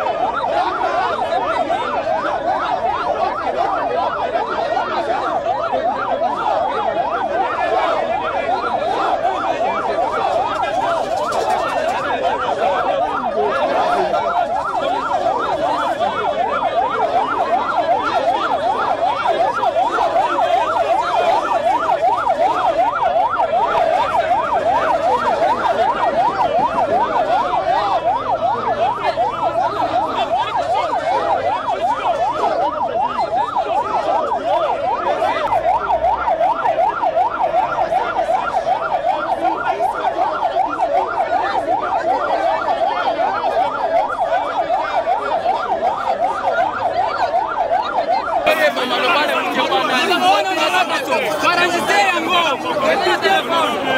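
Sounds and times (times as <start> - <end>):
siren yelping: 0.0 - 53.9.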